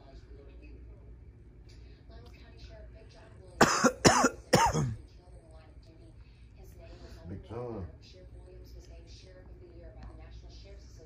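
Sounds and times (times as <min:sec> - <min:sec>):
faint tv speech: 0:00.0 - 0:11.0
person coughing: 0:03.6 - 0:05.0.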